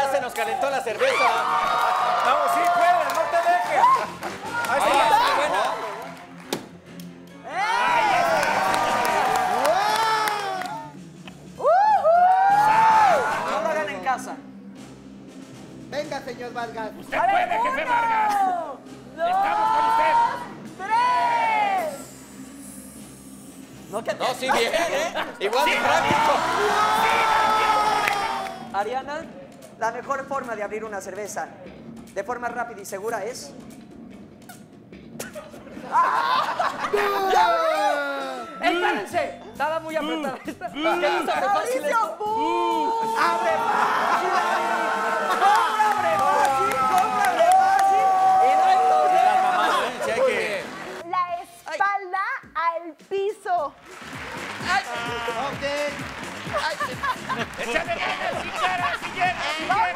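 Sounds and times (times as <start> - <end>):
audience cheering and whooping: 1.0 - 6.2, 7.5 - 10.9, 11.6 - 13.6, 25.5 - 28.7, 35.8 - 38.6, 42.7 - 51.0
man crying out with effort: 35.9 - 38.6.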